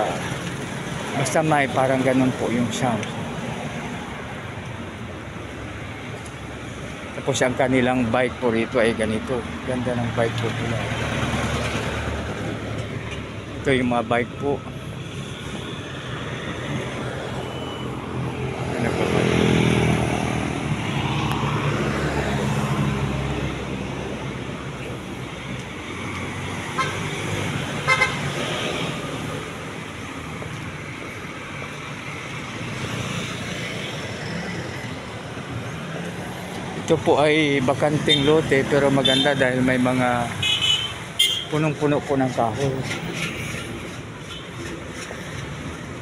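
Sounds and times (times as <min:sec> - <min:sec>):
road traffic passing: 0:00.0 - 0:46.0.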